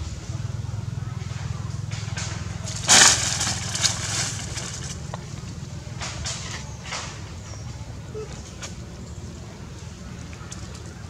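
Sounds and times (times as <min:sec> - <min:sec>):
low engine-like hum: 0:00.0 - 0:11.0
dry leaves and twigs crackling: 0:01.3 - 0:07.6.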